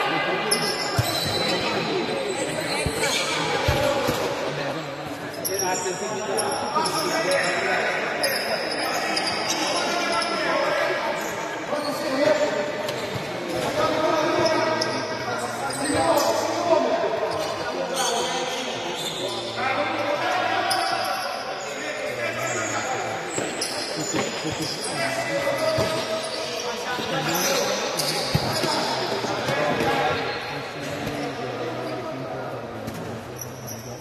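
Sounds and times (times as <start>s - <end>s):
shoes squeaking on court: 0.5s - 4.2s.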